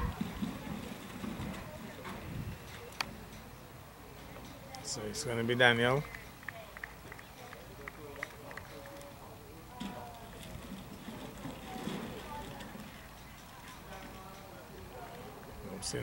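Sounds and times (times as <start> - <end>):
low outdoor background noise: 0.0 - 16.0.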